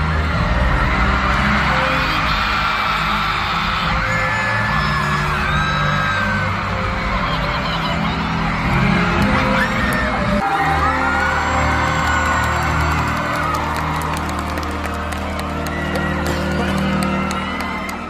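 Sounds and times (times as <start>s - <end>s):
crowd screaming and cheering: 0.0s - 18.0s.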